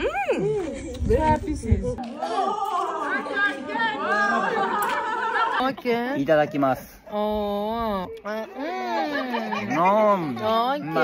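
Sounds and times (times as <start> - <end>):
overlapping voices chatter: 2.0 - 6.8.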